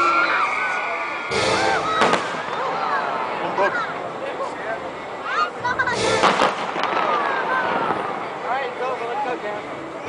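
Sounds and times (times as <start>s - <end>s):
fireworks rush of noise: 0.0s - 10.0s
firework sharp bang: 1.3s - 3.0s, 5.9s - 8.2s.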